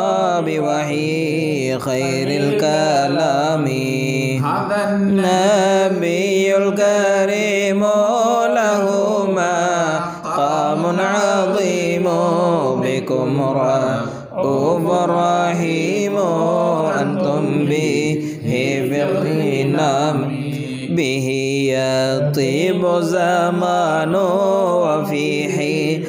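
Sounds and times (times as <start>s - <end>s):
person chanting devotional song: 0.0s - 26.0s.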